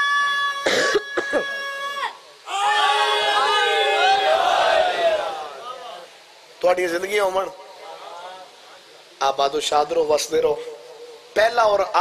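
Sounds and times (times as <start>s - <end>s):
man coughing into handkerchief: 0.7s - 1.4s.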